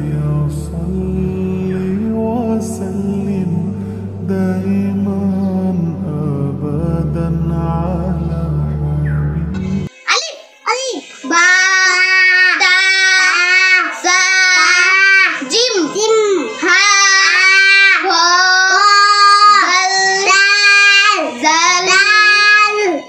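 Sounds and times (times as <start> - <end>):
boy chanting: 9.9 - 23.0.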